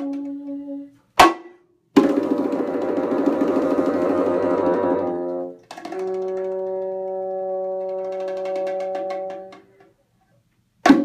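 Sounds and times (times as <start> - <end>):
bassoon long note: 2.8 - 9.6.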